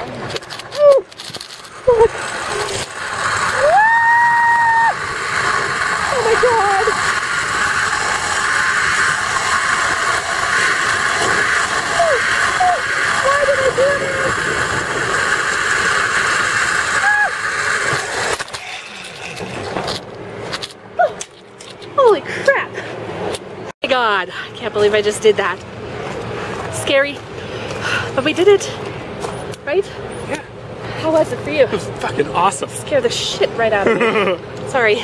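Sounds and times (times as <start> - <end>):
zipline trolley whirring: 0.0 - 35.0
person crying out: 3.6 - 5.0, 11.9 - 14.3, 17.0 - 17.4.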